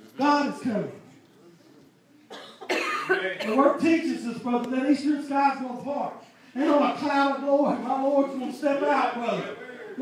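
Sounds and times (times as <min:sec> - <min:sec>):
man coughing: 0:02.3 - 0:03.8.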